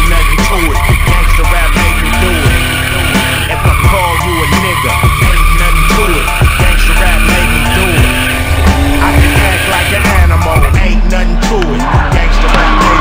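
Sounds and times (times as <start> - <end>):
hip-hop music: 0.0 - 13.0
tyres squealing on concrete: 0.0 - 13.0.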